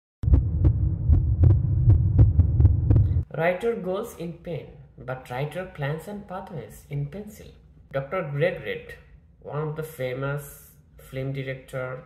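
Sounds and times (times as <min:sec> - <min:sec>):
loud low throbbing hum: 0:00.2 - 0:03.2.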